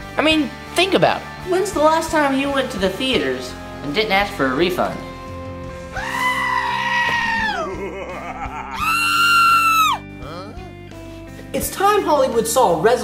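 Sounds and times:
background music: 0.0s - 13.0s
high-pitched wailing cries: 6.0s - 7.8s, 8.4s - 10.0s.

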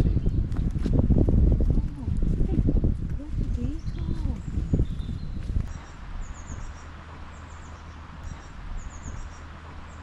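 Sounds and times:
footsteps on dirt path: 0.0s - 6.8s
low rumble on microphone: 0.0s - 10.0s.

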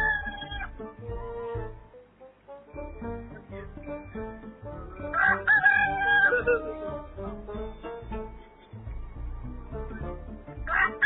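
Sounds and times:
rooster crowing: 0.0s - 0.7s, 5.1s - 6.6s, 10.7s - 11.0s.

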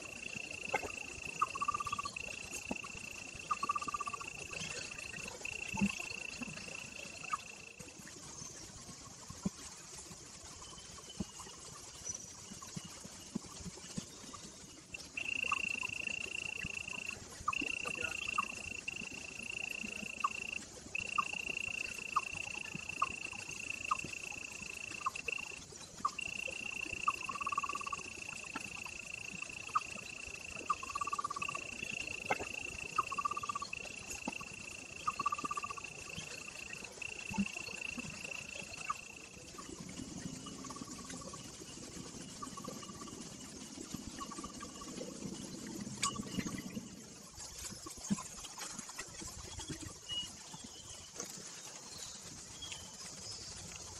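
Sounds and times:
low animal chirps: 15.0s - 41.4s.

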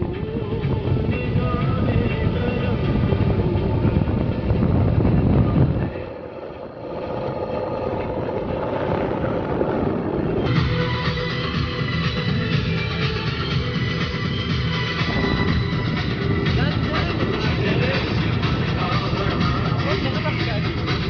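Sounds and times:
music playing: 0.0s - 21.0s.

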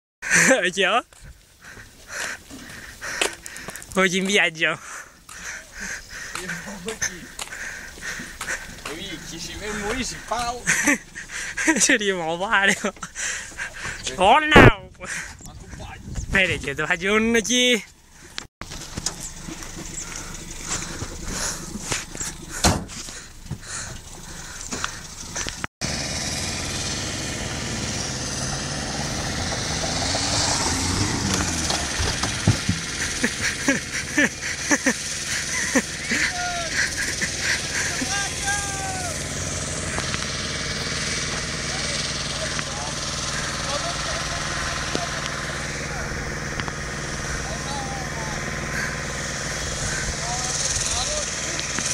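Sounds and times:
tyres rushing on gravel: 0.2s - 15.2s, 15.8s - 51.9s
van engine running: 1.6s - 14.5s, 15.1s - 51.9s
sharp knocks and clatter: 31.3s - 33.5s.

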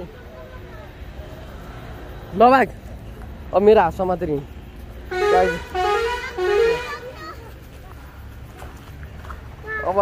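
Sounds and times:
multi-tone vehicle horn toots: 5.1s - 7.3s.

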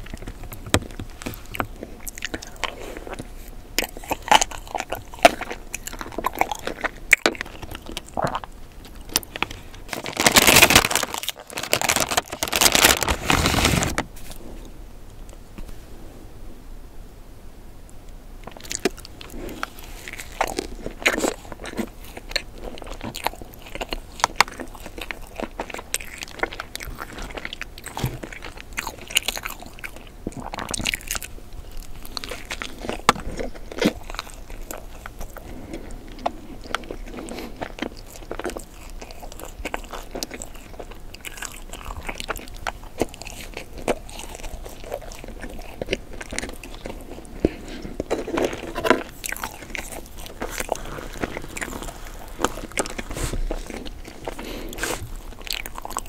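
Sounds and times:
chewing doughnut: 0.0s - 15.4s, 18.4s - 56.0s.

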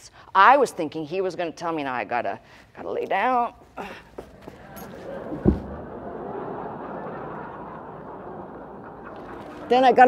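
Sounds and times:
audience laughing: 4.3s - 10.0s.

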